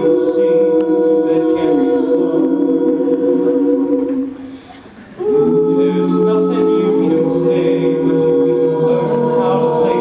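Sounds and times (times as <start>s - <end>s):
vocal group singing in harmony: 0.0s - 10.0s.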